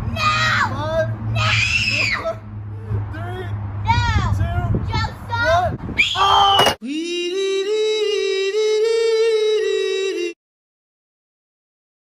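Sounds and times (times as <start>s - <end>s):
burst with falling squeal: 1.4s - 2.4s.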